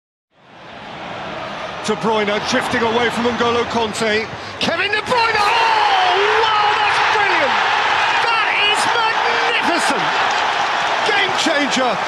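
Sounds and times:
stadium crowd roaring: 0:00.4 - 0:12.0.

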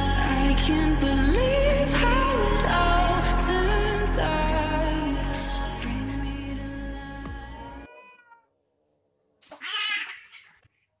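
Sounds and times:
background music: 0:00.0 - 0:07.9
cat yowling: 0:07.7 - 0:08.5, 0:09.5 - 0:10.6.

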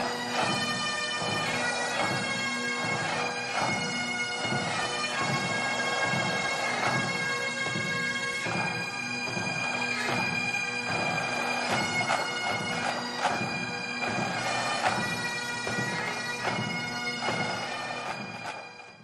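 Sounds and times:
bagpipes playing: 0:00.0 - 0:19.0.

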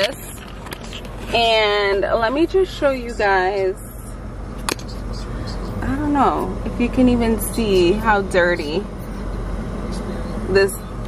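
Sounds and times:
car cabin hum: 0:00.0 - 0:11.0.

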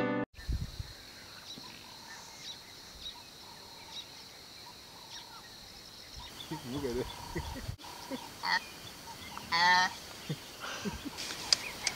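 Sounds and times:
bird chirps: 0:00.4 - 0:11.9.

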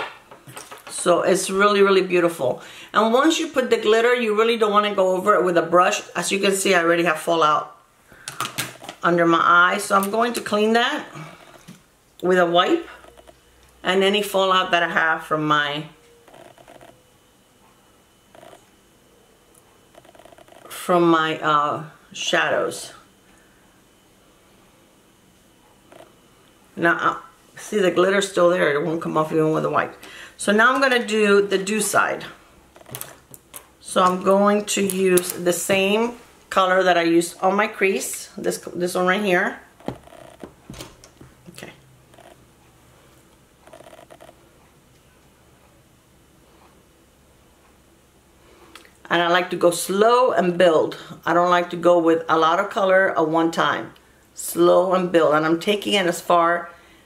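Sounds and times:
person speaking: 0:09.0 - 0:11.6, 0:12.2 - 0:16.0, 0:26.8 - 0:33.2, 0:33.8 - 0:39.7.

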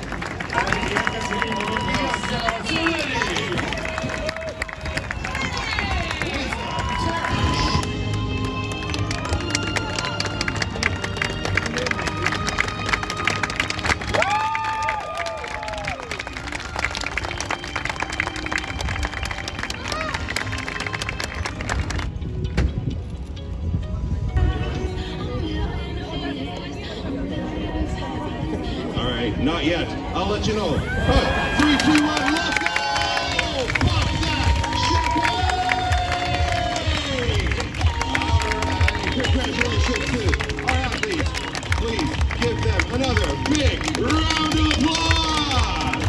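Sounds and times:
outdoor crowd voices: 0:00.0 - 0:46.0
steady-beat background music: 0:00.0 - 0:46.0.

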